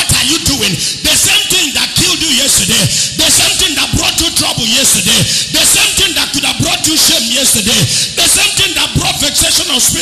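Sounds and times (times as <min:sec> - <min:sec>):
man preaching through microphone: 0:00.0 - 0:10.0.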